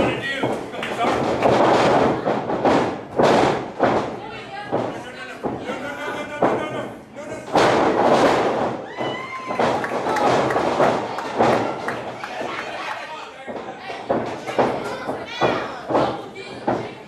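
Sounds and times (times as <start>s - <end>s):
bodies slamming onto ring mat: 0.0s - 5.6s, 7.5s - 11.7s
people shouting: 8.8s - 10.6s.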